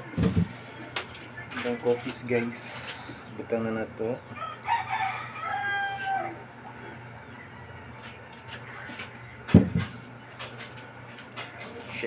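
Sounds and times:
rooster crowing: 4.3s - 6.6s.

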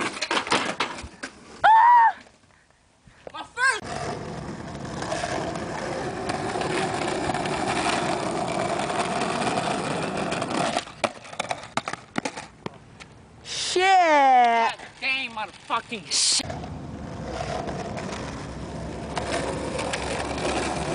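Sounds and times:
skateboard wheels rolling on asphalt: 0.0s - 2.5s, 3.2s - 13.4s, 14.0s - 20.9s
skateboard clacks: 4.4s - 12.8s, 17.3s - 20.9s.

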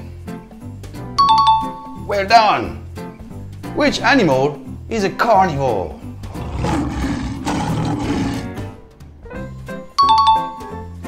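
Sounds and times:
background music: 0.0s - 11.0s
tiger roaring: 6.2s - 9.3s.

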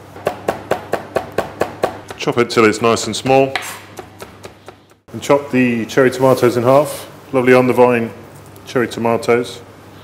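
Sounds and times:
knife chopping garlic: 0.2s - 5.0s.

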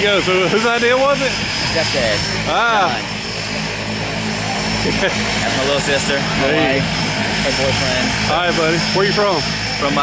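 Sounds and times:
propeller airplane engine droning: 0.0s - 10.0s.

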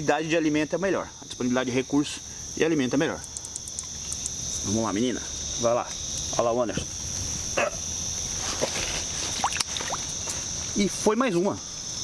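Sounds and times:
crickets trilling: 0.0s - 12.0s
short falling insect calls: 0.0s - 12.0s.

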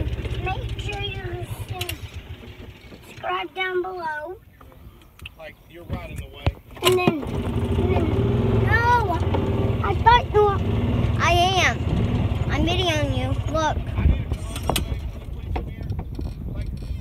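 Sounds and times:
golf cart humming: 0.0s - 4.8s, 6.8s - 16.2s.

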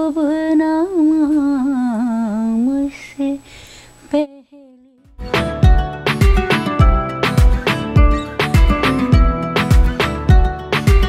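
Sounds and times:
woman singing solo: 0.0s - 5.0s.

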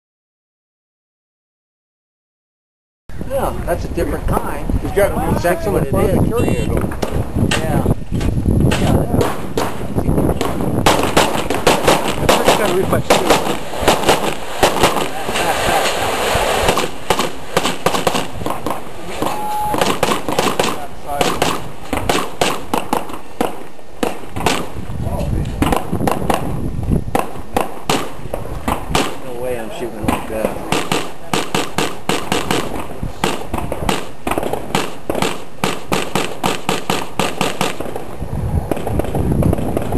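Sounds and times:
distant rapid gunfire: 8.7s - 24.8s, 25.6s - 29.3s, 30.0s - 38.1s
rapid gunshots: 8.7s - 24.8s, 25.6s - 26.5s, 27.1s - 38.1s.

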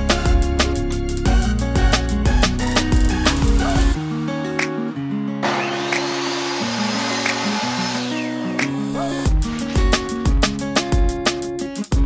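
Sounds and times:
background music: 0.0s - 12.0s
miter saw motor whine: 5.4s - 8.8s
saw cutting wood board: 5.4s - 10.2s.

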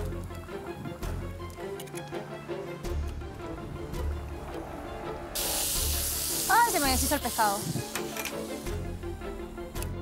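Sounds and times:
background music with beat: 0.0s - 10.0s
egg sizzling in hot oil: 5.4s - 9.7s.

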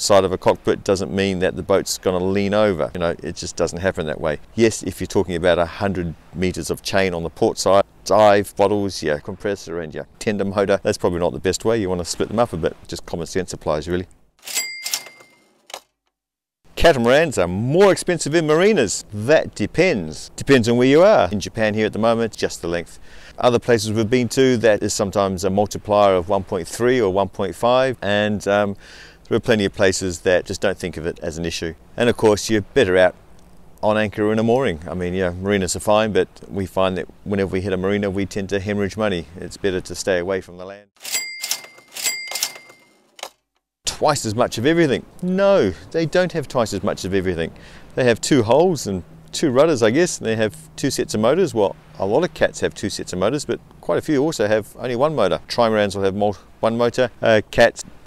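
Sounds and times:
cash register clatter: 14.4s - 15.8s, 41.0s - 43.3s
high bell ringing: 14.5s - 15.5s, 41.0s - 43.0s.

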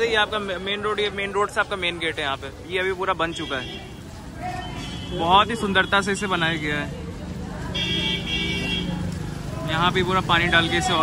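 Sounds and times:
street traffic hum: 0.0s - 11.0s
vehicle horn: 7.8s - 9.0s.

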